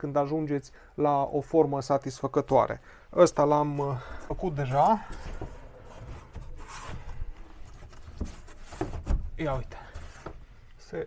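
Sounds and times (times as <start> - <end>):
plywood scraping against wall: 4.8 - 10.5.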